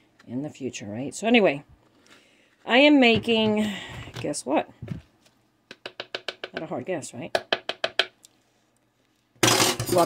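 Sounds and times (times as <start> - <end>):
spoon tapping plastic tub: 5.7 - 6.7.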